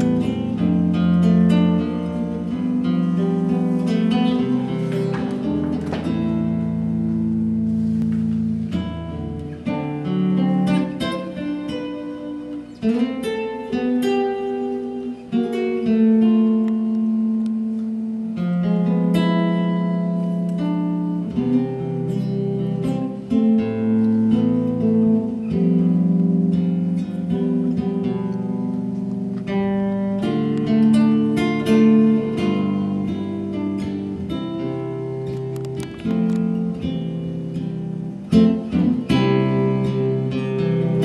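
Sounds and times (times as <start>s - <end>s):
fingerstyle guitar: 0.0s - 41.0s.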